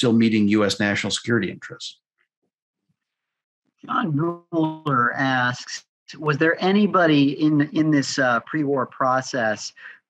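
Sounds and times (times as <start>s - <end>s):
man speaking: 0.0s - 2.0s.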